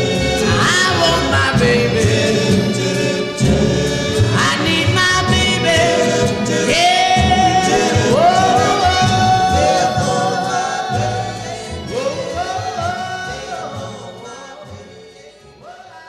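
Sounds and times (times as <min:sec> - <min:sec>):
steady bass rhythm: 0:00.0 - 0:14.2
backing harmony singers: 0:00.0 - 0:16.0
lead singer: 0:00.0 - 0:16.0.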